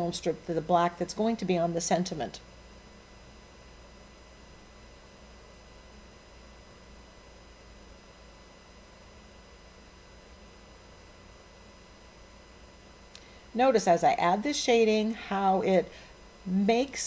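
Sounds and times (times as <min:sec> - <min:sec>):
faint steady hiss: 0:00.0 - 0:17.0
low electrical hum: 0:00.0 - 0:17.0.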